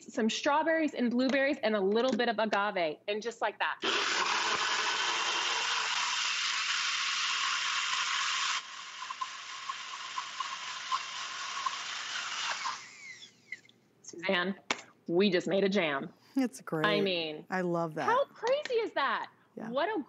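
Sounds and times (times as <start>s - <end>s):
blender running: 3.8s - 13.3s.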